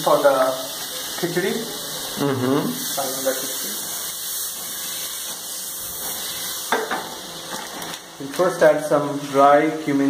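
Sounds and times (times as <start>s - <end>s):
butter sizzling in a pan: 0.0s - 10.0s.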